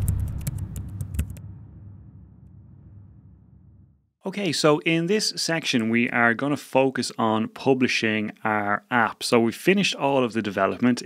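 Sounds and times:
deep low boom: 0.0 - 4.1.

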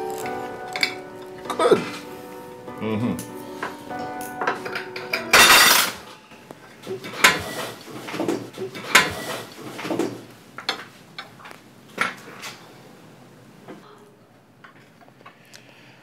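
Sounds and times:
cutlery clinking on a plate: 4.8 - 6.0.

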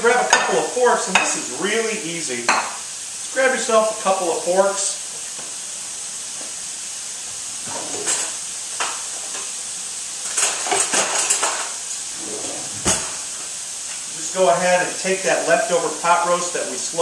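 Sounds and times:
mushrooms sizzling in a pan: 0.0 - 17.0.

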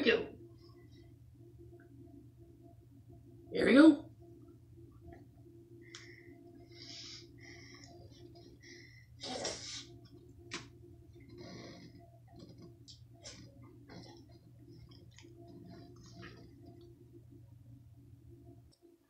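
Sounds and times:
low room hum: 0.0 - 19.0
man chewing food: 9.6 - 17.2.

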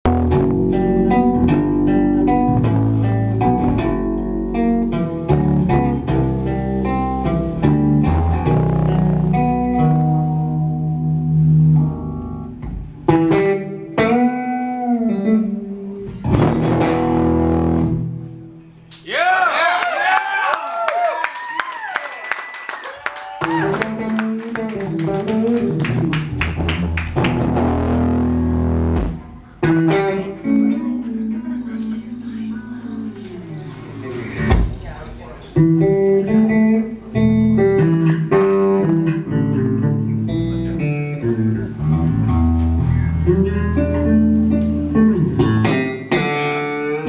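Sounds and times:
electric bass guitar playing: 0.0 - 18.8, 23.4 - 47.0.

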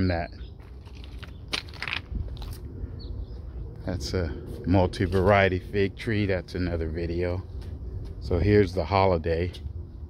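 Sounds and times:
footsteps crunching on mulch and rock: 0.6 - 2.7, 4.4 - 5.6.

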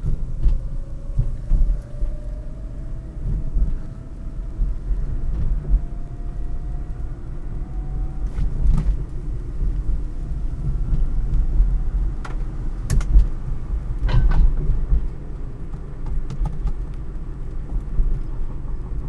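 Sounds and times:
road and tyre rumble: 0.0 - 19.0.

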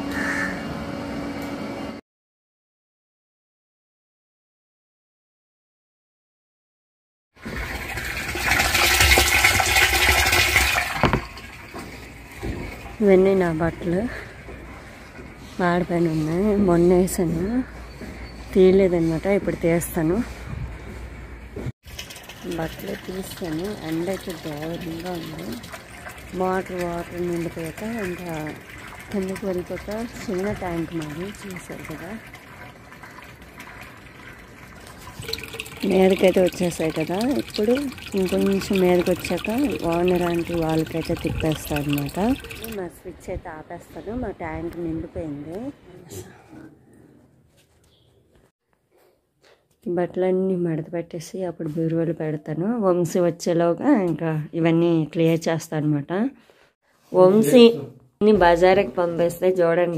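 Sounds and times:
water rushing into plastic tank: 7.4 - 13.9, 21.8 - 42.8.

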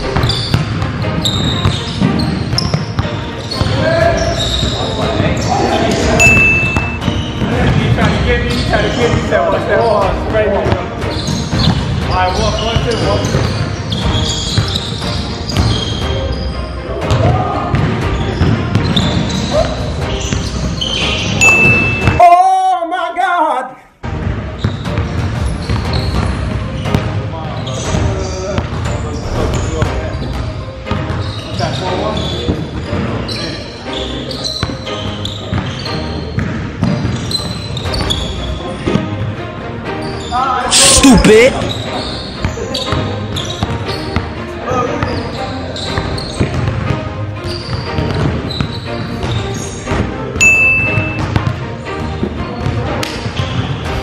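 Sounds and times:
voices talking: 40.6 - 41.7
basketball bouncing on wooden floor: 51.2 - 51.5.

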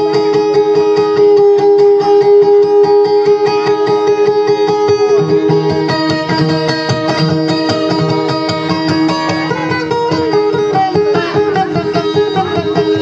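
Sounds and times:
guitar instrumental melody: 0.0 - 13.0.

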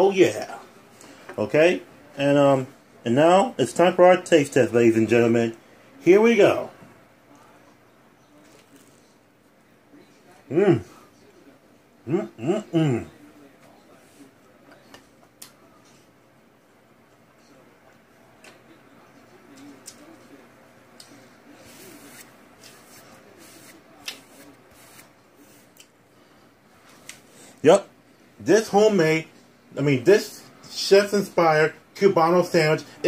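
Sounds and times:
faint small noises: 0.0 - 33.0
quiet chewing: 8.4 - 9.3, 19.4 - 20.4
murmur of voice: 9.9 - 16.1.

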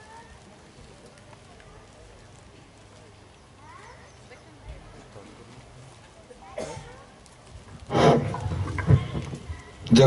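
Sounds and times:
microphone handling rubbing and bumps: 7.9 - 9.6.

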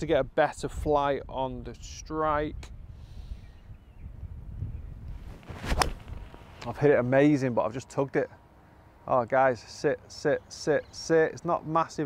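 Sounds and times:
wind rumble on microphone: 0.0 - 6.6
golf club striking ball: 5.6 - 6.3.

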